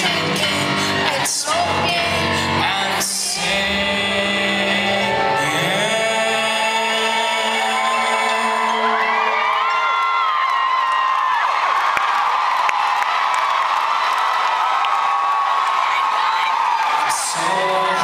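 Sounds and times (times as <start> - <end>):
concert crowd cheering and whooping: 5.1 - 18.0.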